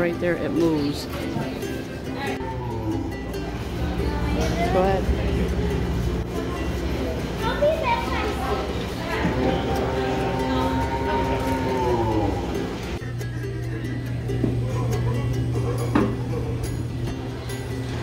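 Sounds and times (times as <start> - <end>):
music with voices: 0.0 - 18.0.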